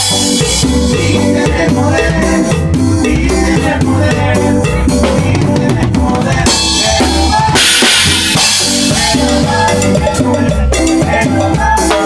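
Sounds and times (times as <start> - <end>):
bass and keyboard: 0.0 - 12.0
drum kit fast beat: 0.0 - 12.0.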